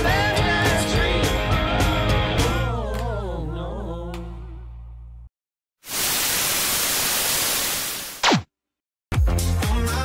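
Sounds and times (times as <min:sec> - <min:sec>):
static hiss: 0:05.8 - 0:08.3.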